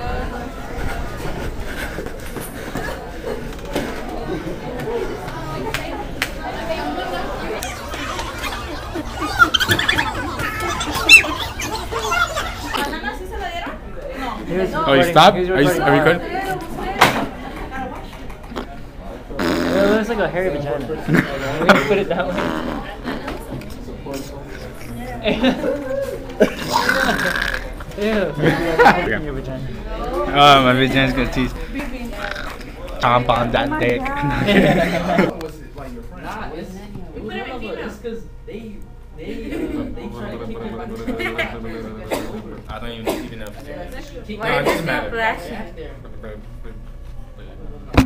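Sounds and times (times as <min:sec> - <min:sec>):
murmur of talk: 0:00.0 - 0:48.0
teenagers laughing: 0:06.7 - 0:13.8, 0:21.0 - 0:22.4, 0:24.9 - 0:29.2, 0:34.2 - 0:35.4, 0:41.0 - 0:41.9
high-pitched cries: 0:07.6 - 0:13.0.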